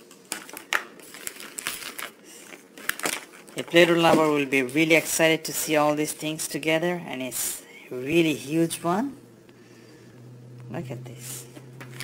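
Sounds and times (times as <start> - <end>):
plastic wrapping crinkling: 0.0 - 6.1, 11.4 - 12.0.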